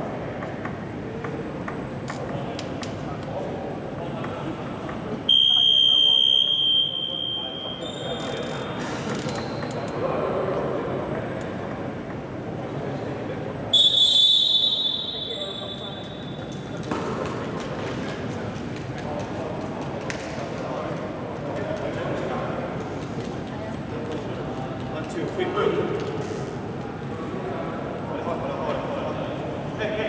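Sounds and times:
high-pitched signal blasts: 13.8 - 16.4.

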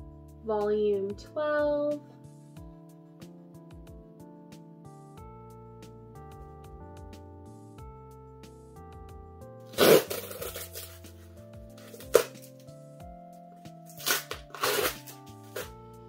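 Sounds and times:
soft background music: 0.0 - 16.0
cardboard ripping: 9.7 - 11.1, 11.8 - 12.6, 13.9 - 15.8
cardboard crinkling: 9.8 - 12.7, 13.9 - 15.8.

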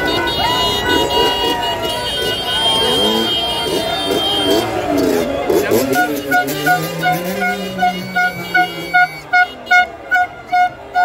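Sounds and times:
vehicle horn short beeps: 0.0 - 5.1, 5.7 - 11.0.

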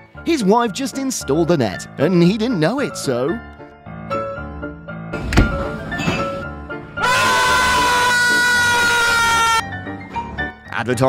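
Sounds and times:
man screaming: 7.0 - 9.6.

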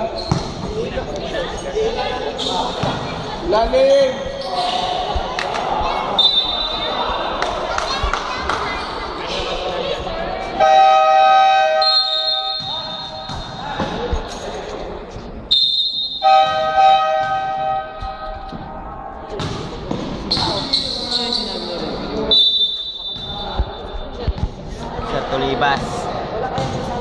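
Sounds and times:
basketball bouncing on court: 0.2 - 0.8, 12.5 - 14.1, 19.3 - 20.7, 25.8 - 27.0.

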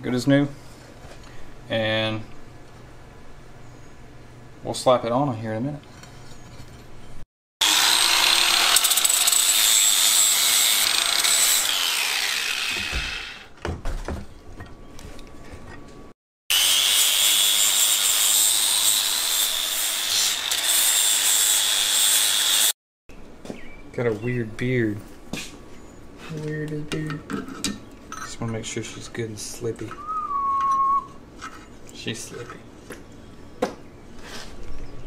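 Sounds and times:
power tool whining: 7.6 - 13.5.

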